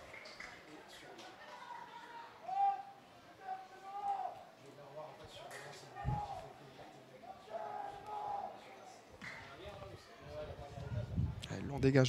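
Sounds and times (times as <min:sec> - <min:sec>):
faint voices calling out: 0:00.0 - 0:11.4.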